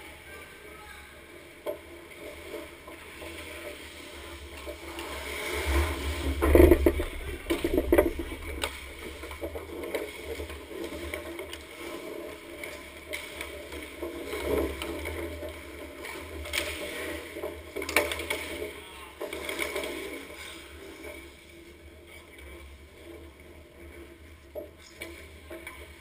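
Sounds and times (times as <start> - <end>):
skate blades scraping ice: 0.3 - 26.0
sticks and bodies knocking: 4.6 - 20.1.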